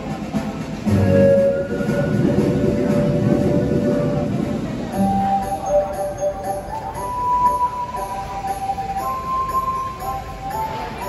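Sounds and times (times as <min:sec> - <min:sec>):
organ steam train chugging: 0:00.0 - 0:11.0.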